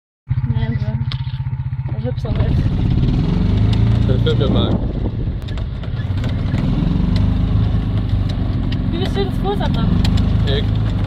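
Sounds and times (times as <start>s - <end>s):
small petrol engine putter: 0.4s - 11.0s.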